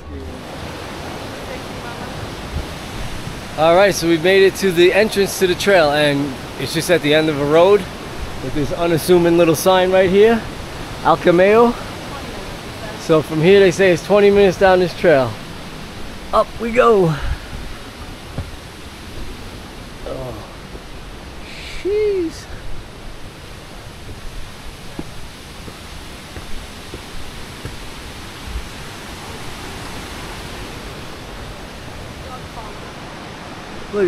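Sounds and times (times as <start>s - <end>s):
running water rushing: 0.0s - 34.0s
faint low thumps: 17.1s - 21.4s, 22.5s - 29.0s.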